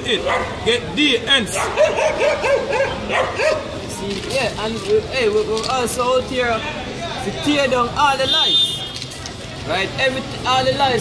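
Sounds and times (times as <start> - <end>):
dog yapping: 1.6 - 3.7.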